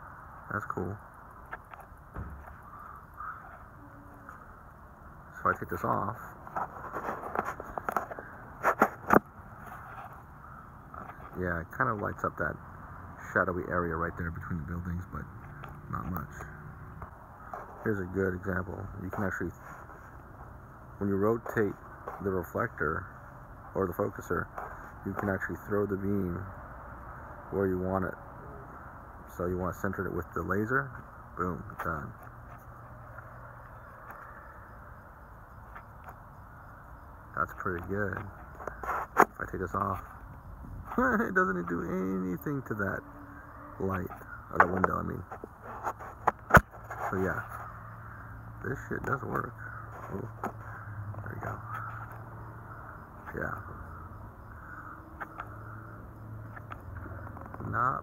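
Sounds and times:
small clicks and scrapes: 0:06.4 - 0:10.3, 0:37.7 - 0:39.4, 0:44.1 - 0:47.7.

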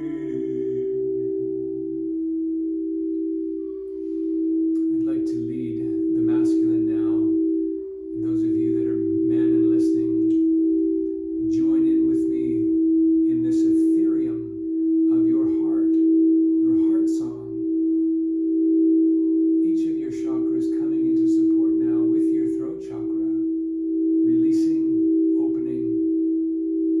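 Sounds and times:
crystal singing bowls ringing: 0:00.0 - 0:27.0
man chanting wordless syllables: 0:04.8 - 0:07.4, 0:08.2 - 0:10.4, 0:11.4 - 0:16.0, 0:16.7 - 0:17.7, 0:19.6 - 0:23.5, 0:24.3 - 0:26.0.

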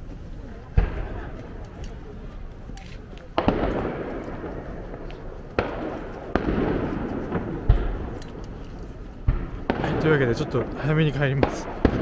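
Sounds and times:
rolling echo: 0:00.5 - 0:12.0
fireworks booming: 0:03.3 - 0:08.5, 0:09.2 - 0:12.0.

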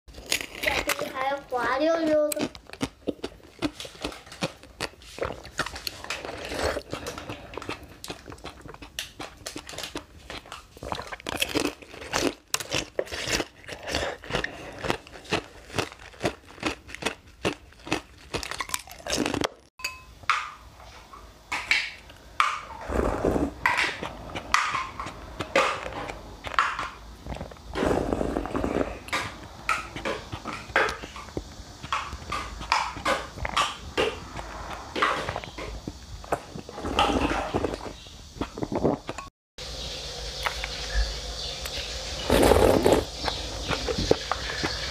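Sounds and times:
ice crunching between teeth: 0:00.1 - 0:01.5, 0:02.3 - 0:19.7, 0:42.2 - 0:44.9
wet slurping from a metal spoon: 0:03.6 - 0:16.0, 0:22.7 - 0:25.1, 0:27.3 - 0:29.3.

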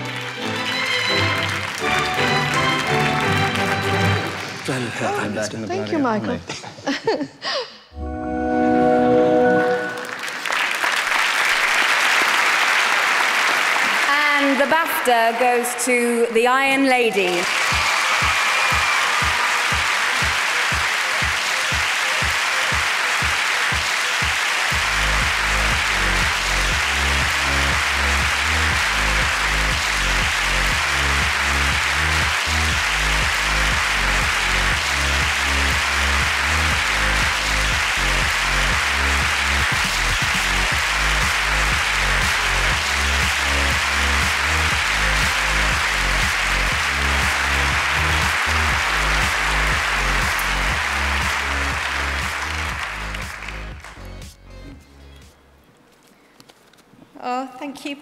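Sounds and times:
audience applauding: 0:00.0 - 0:05.7, 0:09.5 - 0:15.2, 0:17.0 - 0:54.4
play-on music with bass line: 0:24.8 - 0:55.4.

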